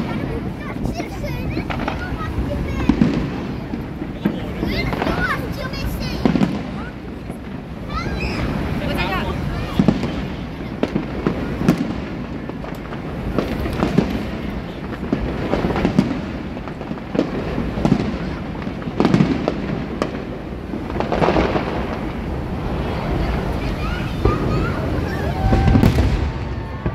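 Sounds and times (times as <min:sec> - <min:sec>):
firework shells bursting: 0:00.0 - 0:26.9.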